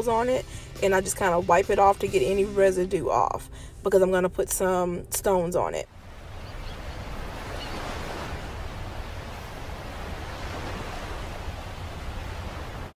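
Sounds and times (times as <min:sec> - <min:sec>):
ocean surf rushing: 0:05.9 - 0:13.0.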